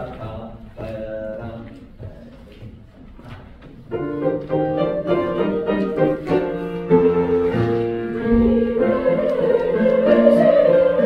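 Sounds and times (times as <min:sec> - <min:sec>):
piano playing chords: 0:03.9 - 0:11.0.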